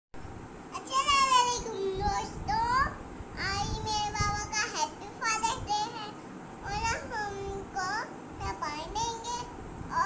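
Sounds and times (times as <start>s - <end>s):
child singing: 0.8s - 10.0s.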